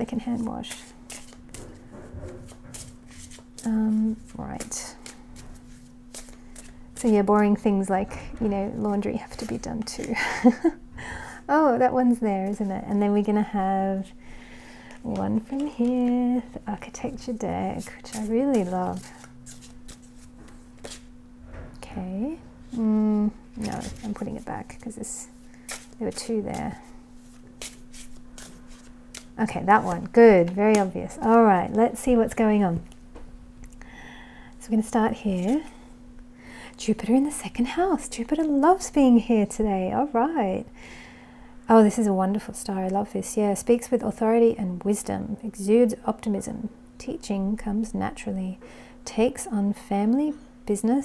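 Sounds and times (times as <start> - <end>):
cards being shuffled: 0.4 - 1.8, 2.5 - 7.6, 14.9 - 21.1, 23.5 - 24.5, 25.4 - 31.8
card clicks and rustles: 18.5 - 21.1.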